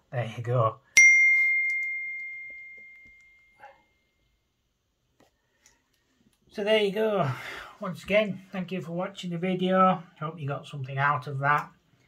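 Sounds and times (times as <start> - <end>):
bright ding: 1.0 - 3.7.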